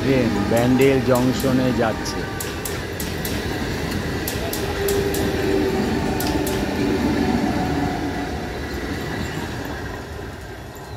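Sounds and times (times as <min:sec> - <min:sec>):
train rumbling past: 0:00.0 - 0:10.9
train wheel clicks: 0:00.7 - 0:07.0.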